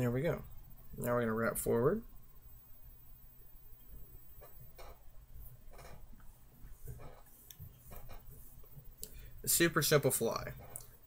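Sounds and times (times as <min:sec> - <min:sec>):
soft ticks and rustles: 0:03.8 - 0:11.0.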